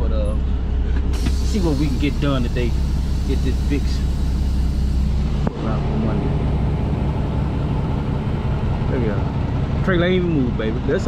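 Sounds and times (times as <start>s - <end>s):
truck diesel engine running: 0.0s - 11.0s.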